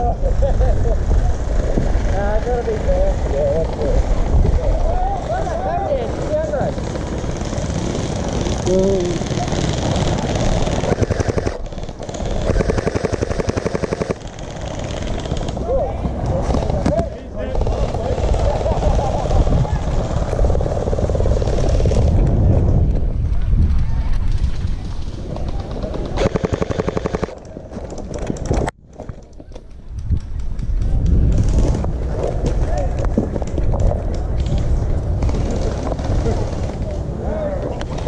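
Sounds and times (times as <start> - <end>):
gel blaster firing full-auto: 6.8 - 15.5, 26.1 - 27.3.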